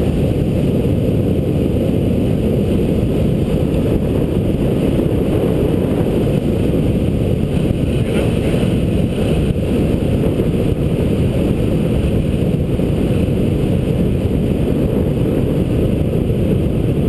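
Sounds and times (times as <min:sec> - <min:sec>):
wind rumble on microphone: 0:00.0 - 0:17.0.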